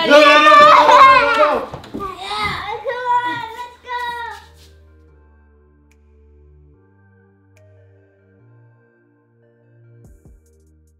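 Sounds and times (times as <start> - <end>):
child crying out: 0.0 - 4.4.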